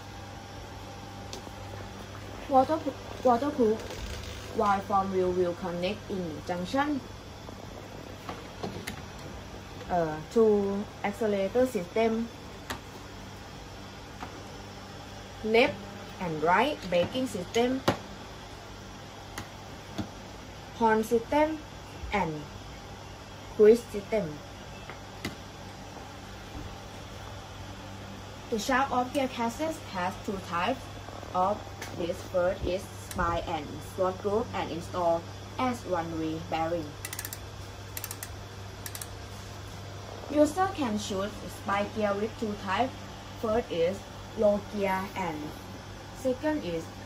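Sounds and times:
freehub ratcheting clicks: 37.0 - 37.4, 38.0 - 39.1.

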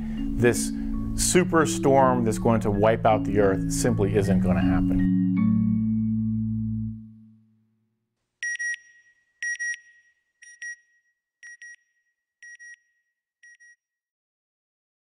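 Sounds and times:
sustained music chord: 0.0 - 7.5.

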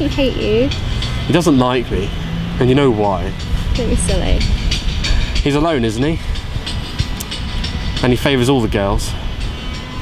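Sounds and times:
low steady rumbling: 0.0 - 10.0.

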